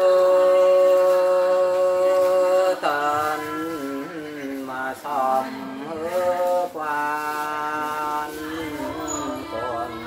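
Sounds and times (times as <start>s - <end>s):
person singing unaccompanied: 0.0s - 10.0s.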